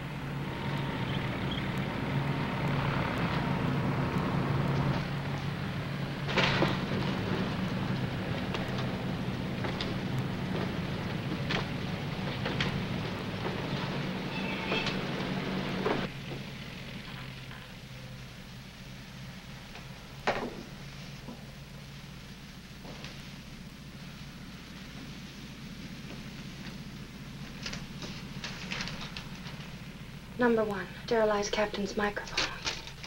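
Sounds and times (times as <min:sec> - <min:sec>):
airfield background noise: 0:00.0 - 0:33.0
engine drone: 0:00.0 - 0:33.0.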